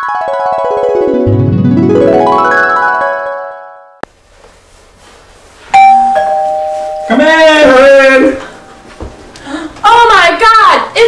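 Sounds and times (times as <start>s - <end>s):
rising keyboard flourish: 0.0s - 3.8s
two-tone doorbell chime: 5.7s - 7.4s.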